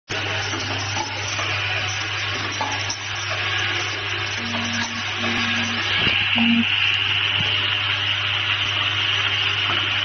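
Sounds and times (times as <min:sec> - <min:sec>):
bottling machine humming and hissing: 0:00.1 - 0:10.0
short low tones: 0:04.4 - 0:06.7.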